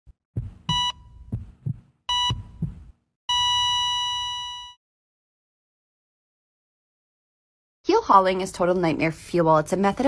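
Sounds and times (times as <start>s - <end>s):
heartbeat thumps: 0.3s - 3.0s
heart monitor beeps: 0.4s - 4.8s.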